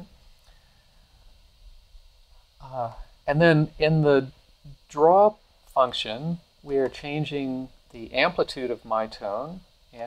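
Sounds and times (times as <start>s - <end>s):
low recording hum and hiss: 0.0s - 10.0s.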